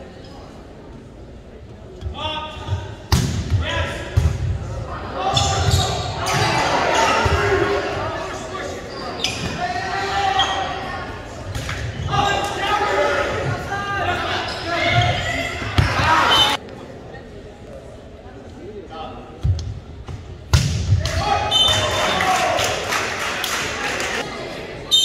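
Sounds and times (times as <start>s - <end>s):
players calling: 2.2s - 16.6s
spectators shouting and cheering: 4.6s - 8.9s, 9.5s - 16.6s, 20.9s - 25.0s.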